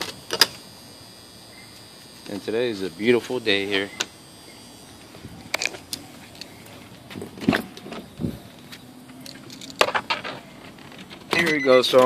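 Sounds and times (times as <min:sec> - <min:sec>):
keys jangling: 0:09.1 - 0:09.8.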